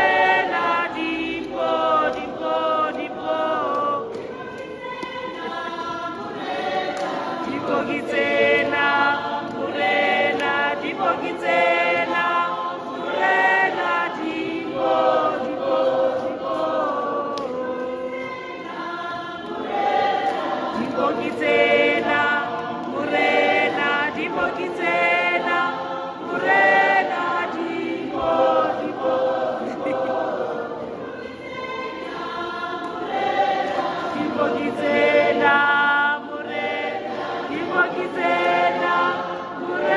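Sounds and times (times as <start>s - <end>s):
congregation singing a hymn: 0.0s - 39.9s.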